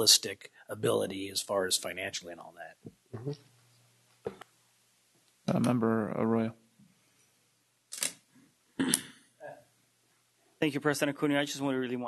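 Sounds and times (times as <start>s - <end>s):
person saying uh: 3.2s - 3.4s, 5.5s - 6.5s.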